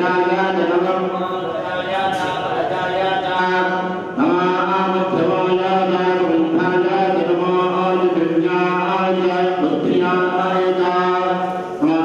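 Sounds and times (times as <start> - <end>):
men chanting: 0.0 - 12.0.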